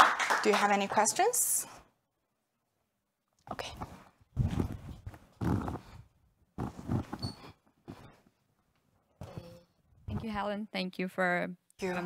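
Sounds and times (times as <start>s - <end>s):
microphone handling knocks and rustling: 4.3s - 6.0s, 10.0s - 10.4s.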